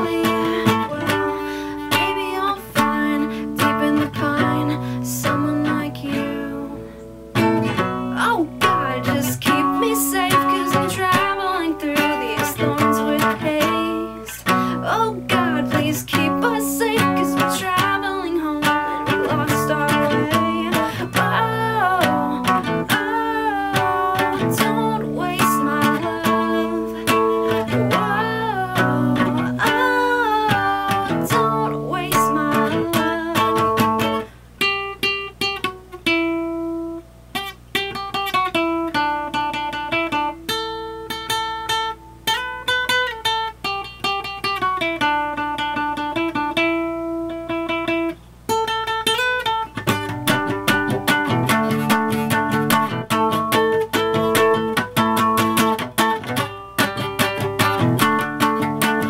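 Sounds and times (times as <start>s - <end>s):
woman singing: 0.0s - 34.3s, 57.3s - 59.0s
acoustic guitar strumming: 0.0s - 59.0s.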